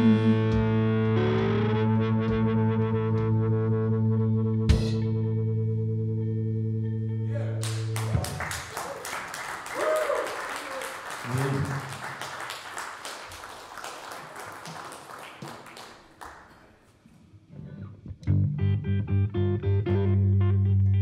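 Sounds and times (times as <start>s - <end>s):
electric guitar: 0.0s - 8.7s, 17.5s - 21.0s
audience applauding: 7.6s - 17.0s.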